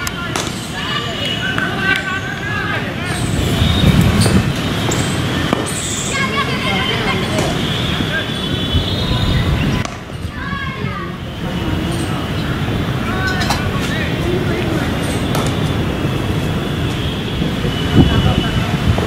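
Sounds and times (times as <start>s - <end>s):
distant shouted voices: 0.0s - 19.0s.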